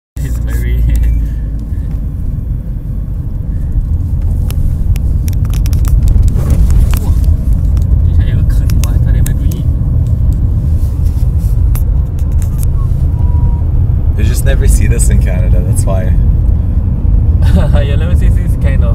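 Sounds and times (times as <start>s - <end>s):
engine and tyre rumble: 0.2s - 18.9s
sharp clicks and rattles: 3.8s - 10.6s, 11.2s - 12.8s.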